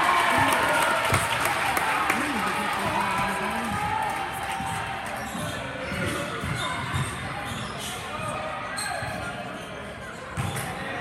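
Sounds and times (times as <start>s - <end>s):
murmur of spectators talking: 0.0s - 11.0s
basketball bouncing on gym floor: 5.4s - 7.3s.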